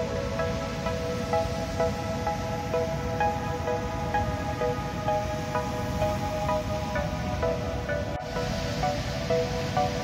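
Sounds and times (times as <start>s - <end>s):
electronic background music: 0.0s - 10.0s.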